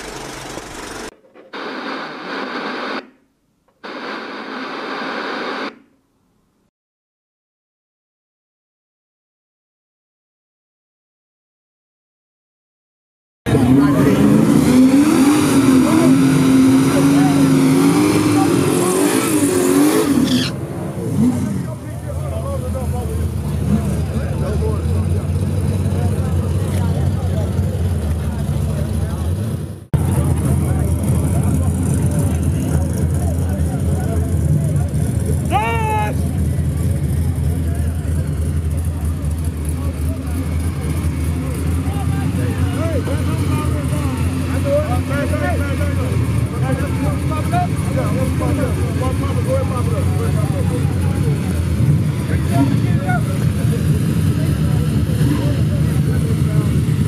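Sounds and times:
drag racing car engines: 0.0s - 3.1s, 13.5s - 57.0s
crowd voices: 13.5s - 57.0s.

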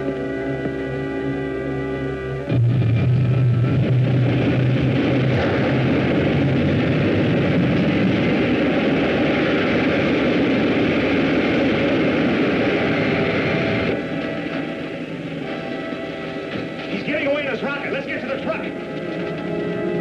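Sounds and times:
loud rushing roar: 0.0s - 20.0s.

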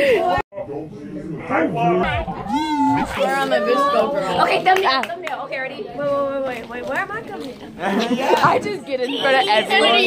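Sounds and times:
girls making playful vocal sounds: 2.0s - 4.5s.

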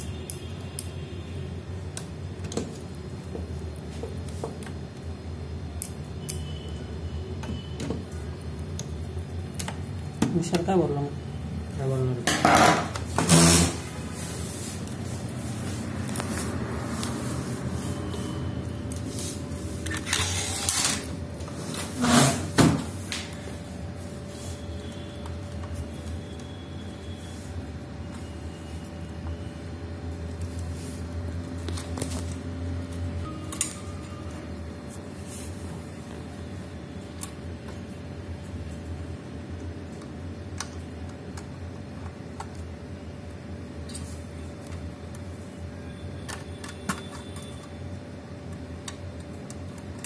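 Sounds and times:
rustling and scraping of parts: 12.4s - 26.2s.

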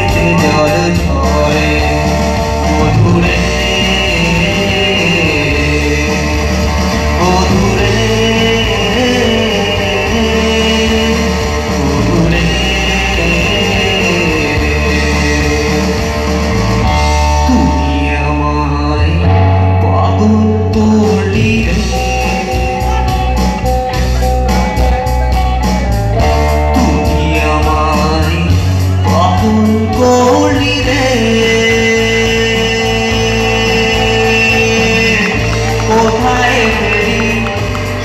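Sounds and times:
live band with guitar and keyboard: 0.0s - 38.0s
man singing: 0.0s - 38.0s.

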